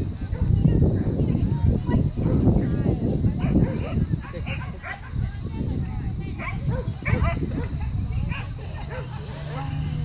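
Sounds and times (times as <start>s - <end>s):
dog barking: 0.3s - 0.6s, 2.2s - 2.5s, 3.4s - 5.2s, 6.4s - 9.8s.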